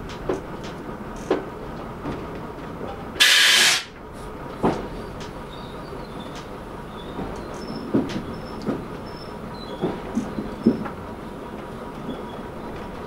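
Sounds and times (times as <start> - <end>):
train rumbling along track: 0.0 - 13.0
wheels clicking over rail joints: 0.0 - 13.0
loud short hiss: 3.2 - 4.0.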